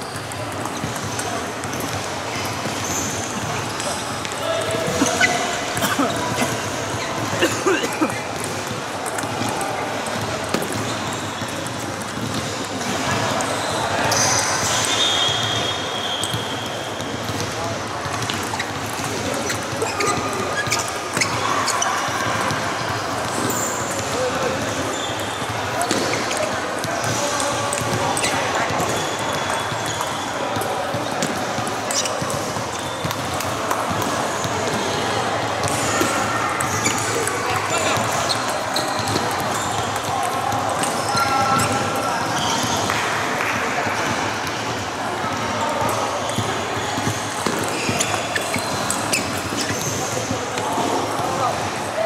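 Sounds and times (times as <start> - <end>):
background voices in a hall: 0.0 - 52.0.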